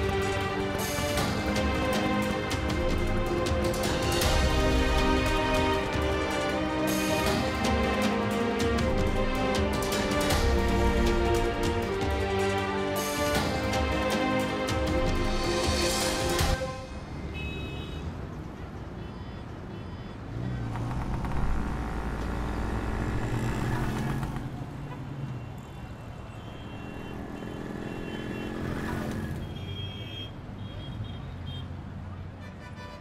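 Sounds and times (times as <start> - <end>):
scooters and cars passing: 16.9 - 32.4.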